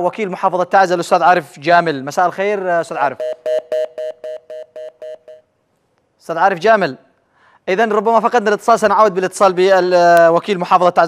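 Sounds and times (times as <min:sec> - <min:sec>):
rapid two-note telephone beeps: 0:03.1 - 0:05.5.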